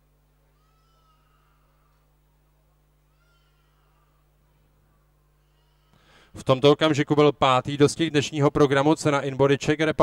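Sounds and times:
faint high-pitched calls: 0:00.5 - 0:02.1.

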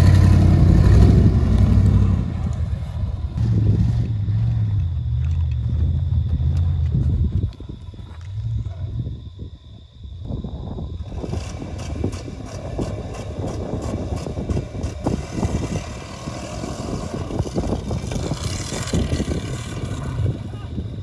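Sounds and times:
distant car engine rumble: 0:00.0 - 0:21.0.

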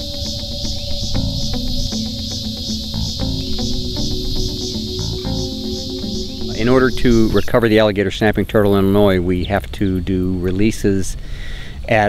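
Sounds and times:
plucked background music: 0:00.0 - 0:09.2
high-pitched insect chorus: 0:00.0 - 0:09.4.

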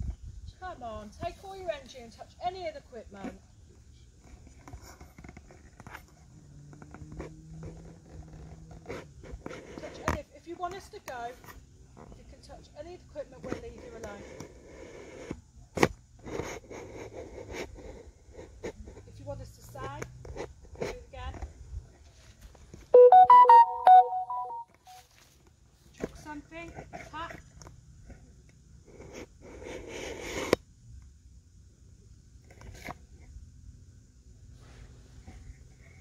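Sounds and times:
electronic beeping tune: 0:23.0 - 0:24.6.

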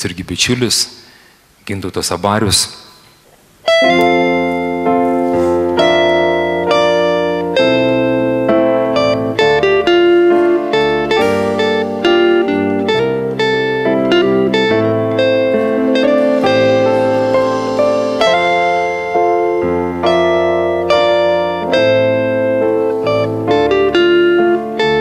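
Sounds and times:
live band playing chords: 0:03.7 - 0:25.0.

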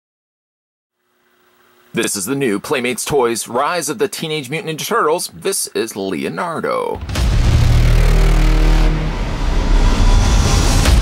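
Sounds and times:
deep electronic rumble: 0:07.0 - 0:11.0.

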